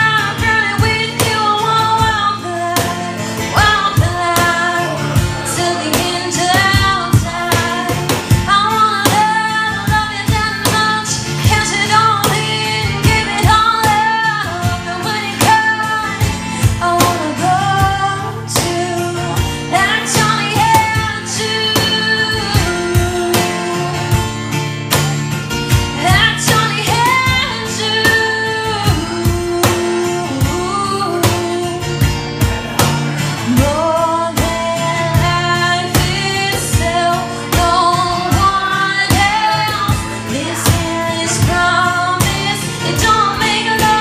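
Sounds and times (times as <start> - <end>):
woman singing: 0.0 - 24.5, 25.9 - 32.2, 33.4 - 44.0
cajon beaten by hand: 0.0 - 44.0
strummed acoustic guitar: 0.0 - 44.0.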